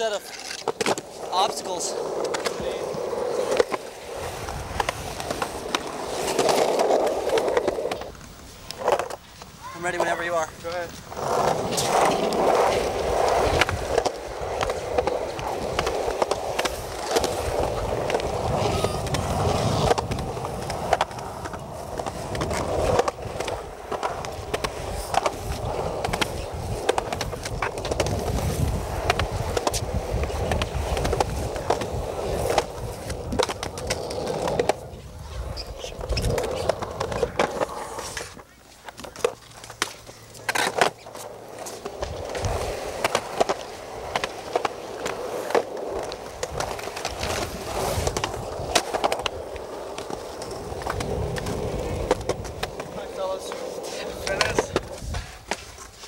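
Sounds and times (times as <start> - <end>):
skateboard wheels rolling on concrete: 0.0 - 56.0
wheels clicking over pavement joints: 0.0 - 56.0.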